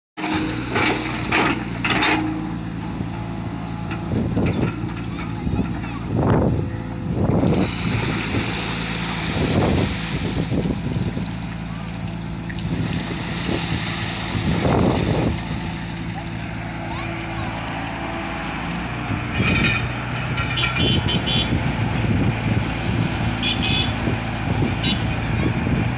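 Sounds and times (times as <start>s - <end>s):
excavator diesel engine running: 0.2s - 25.9s.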